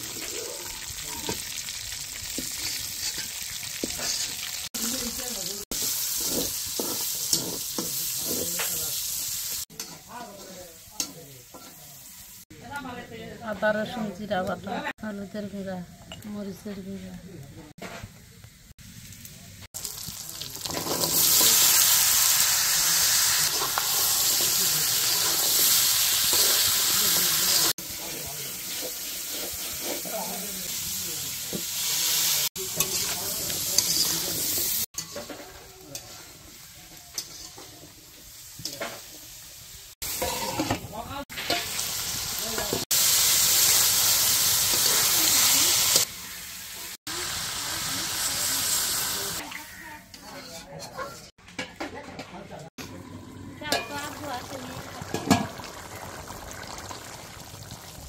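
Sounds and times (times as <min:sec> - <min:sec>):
vegetables sizzling in oil: 0:00.0 - 0:15.6, 0:18.1 - 0:50.2, 0:52.9 - 0:58.0
spatula scraping pan: 0:02.3 - 0:04.6, 0:05.7 - 0:08.8, 0:27.6 - 0:30.8, 0:32.7 - 0:36.5, 0:37.1 - 0:37.9, 0:40.0 - 0:40.9, 0:49.6 - 0:51.4.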